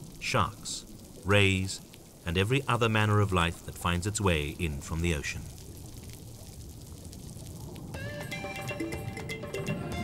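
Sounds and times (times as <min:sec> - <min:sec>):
light underwater crackle: 0:00.0 - 0:08.3.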